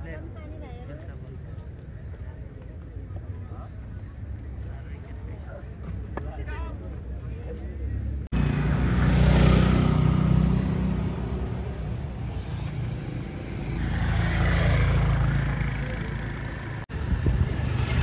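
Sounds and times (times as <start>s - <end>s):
vehicles passing with engine rumble: 0.0s - 18.0s.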